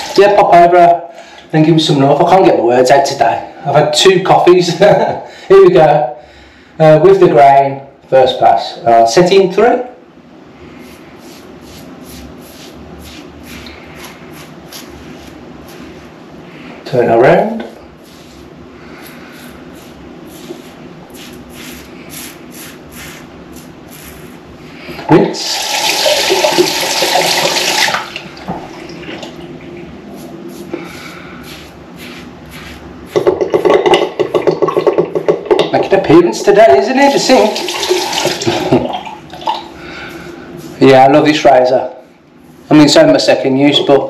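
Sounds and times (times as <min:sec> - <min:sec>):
razor scraping stubble: 0:10.8 - 0:16.0, 0:18.0 - 0:24.4, 0:30.0 - 0:33.2
tap water running into sink: 0:25.5 - 0:28.7, 0:33.2 - 0:35.7, 0:37.4 - 0:39.6.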